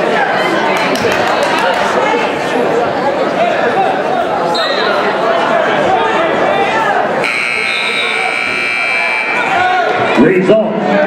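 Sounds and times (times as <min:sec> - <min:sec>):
crowd chatter: 0:00.0 - 0:11.0
scoreboard buzzer: 0:07.2 - 0:09.6.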